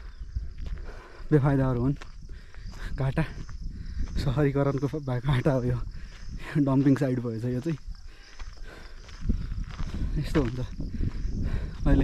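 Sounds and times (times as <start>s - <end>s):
insects droning: 0.0s - 12.0s
man speaking: 1.3s - 2.0s, 4.2s - 5.9s, 6.5s - 7.8s, 10.2s - 10.8s.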